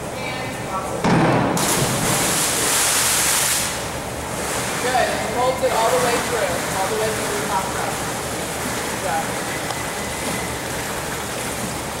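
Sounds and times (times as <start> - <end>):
water rushing in swimming pool: 1.6 - 12.0.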